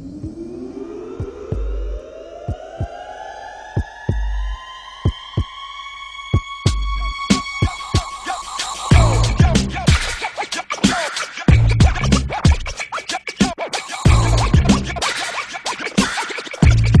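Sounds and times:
hip hop beat: 0.0 - 17.0
turntable scratching: 6.3 - 17.0
heavy bass notes: 6.4 - 7.6, 8.9 - 10.2, 11.5 - 12.7, 14.1 - 15.0, 16.6 - 17.0.

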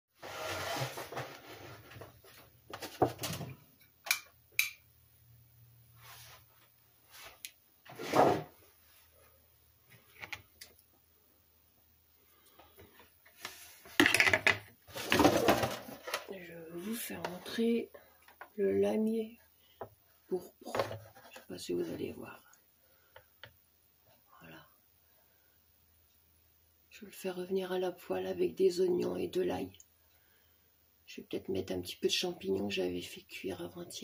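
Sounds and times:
plastic tub being moved: 13.9 - 16.3.

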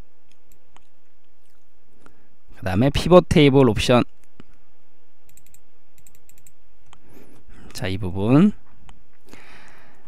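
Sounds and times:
computer keyboard typing: 5.3 - 6.6.

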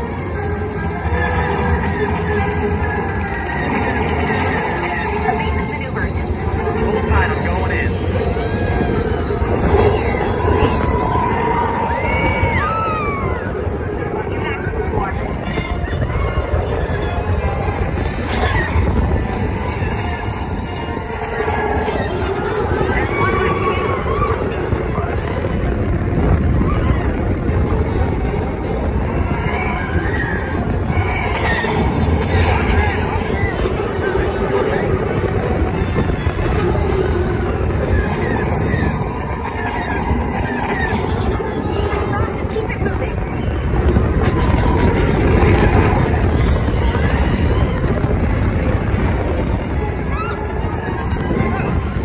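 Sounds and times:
riders' voices: 0.0 - 52.0
roller coaster rumble: 0.0 - 52.0.

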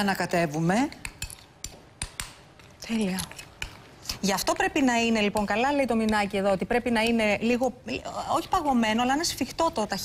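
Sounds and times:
spoon stirring thick paste: 0.8 - 10.0.

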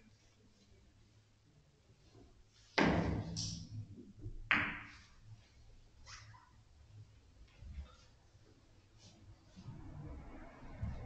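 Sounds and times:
billiard balls knocking together: 4.2 - 5.1.

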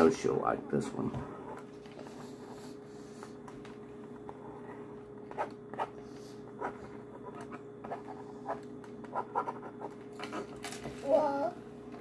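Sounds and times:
faint steady hum: 0.0 - 12.0
stylus scratching drawing board: 4.3 - 10.6.

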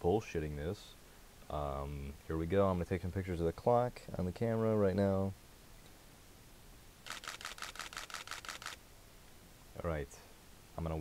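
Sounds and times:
camera shutter clicks: 7.0 - 8.8.

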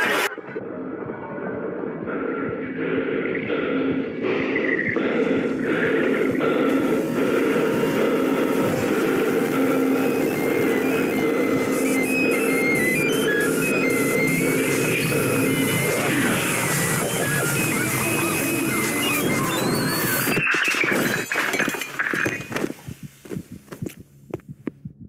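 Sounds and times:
music: 0.0 - 22.6
dense layered noise: 4.4 - 20.3
short high beeping tones: 7.2 - 22.6.

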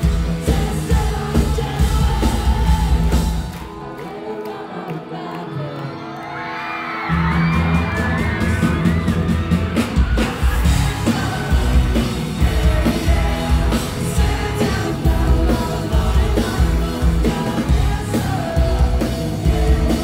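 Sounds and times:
pop-punk band playing live: 0.0 - 3.8, 7.0 - 20.0
person singing over guitar: 0.0 - 7.0, 10.1 - 20.0
crowd whooping: 1.9 - 20.0.

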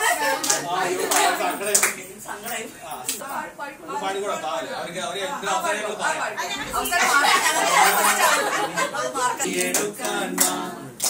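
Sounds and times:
group chatter: 0.0 - 11.0
sharp hand claps: 0.4 - 2.0.

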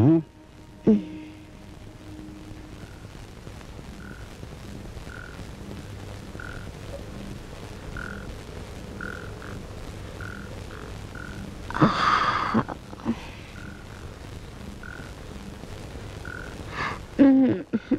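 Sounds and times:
frogs croaking: 0.0 - 17.9
low steady hum: 0.0 - 17.9.

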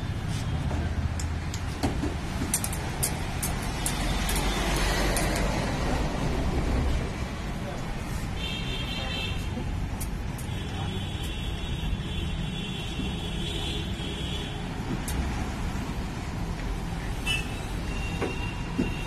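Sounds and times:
low rumble of road traffic: 0.0 - 19.0.

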